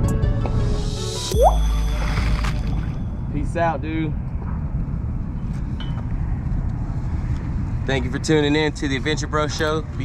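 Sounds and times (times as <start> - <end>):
faint short high tone: 1.3 - 3.2
wind buffeting microphone: 3.0 - 10.0.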